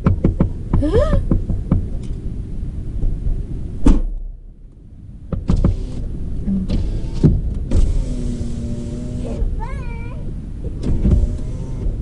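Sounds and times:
sharp clicks and knocks: 0:00.0 - 0:02.2, 0:03.9 - 0:08.1, 0:10.6 - 0:12.0
low rumble inside a car: 0:00.0 - 0:12.0.

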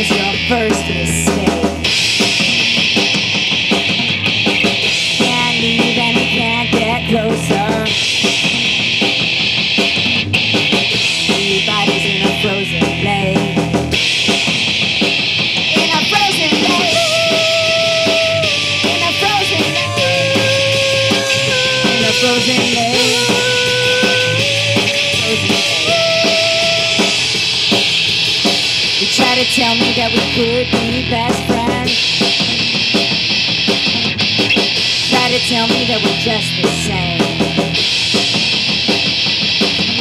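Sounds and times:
lead guitar bending held notes: 0:00.0 - 0:29.8
live rock band playing: 0:00.0 - 0:40.0.

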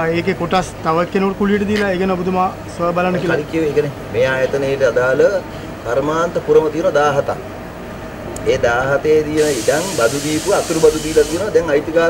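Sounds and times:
man speaking: 0:00.0 - 0:07.4, 0:08.5 - 0:12.0
high hiss of spray: 0:09.4 - 0:11.6.

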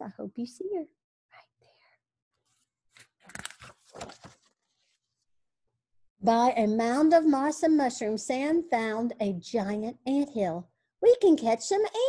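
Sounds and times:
faint breathy whisper: 0:01.3 - 0:02.0
paper page rustle: 0:02.4 - 0:05.2.

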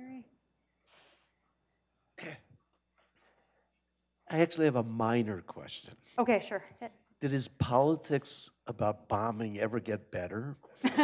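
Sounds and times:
faint cough: 0:02.2 - 0:02.6.

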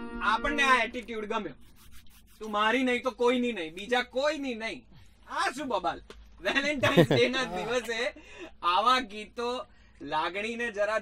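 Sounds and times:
man speaking: 0:06.6 - 0:08.1.

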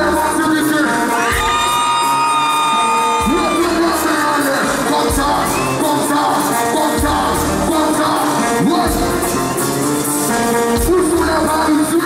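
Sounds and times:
live music over sound system: 0:00.0 - 0:12.0
crowd cheering: 0:01.1 - 0:06.1.

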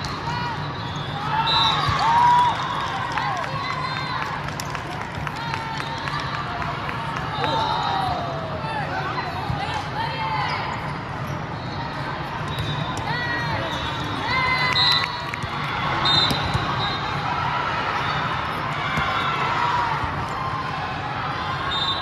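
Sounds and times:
gym hall hum: 0:00.0 - 0:22.0.

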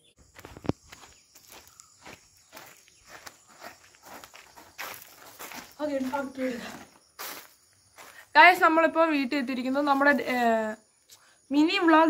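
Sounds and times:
footsteps on dirt: 0:00.1 - 0:08.8.

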